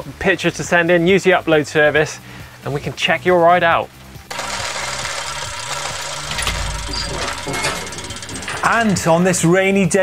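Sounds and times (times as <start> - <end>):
rapid machine-like rattle: 4.3 - 9.9.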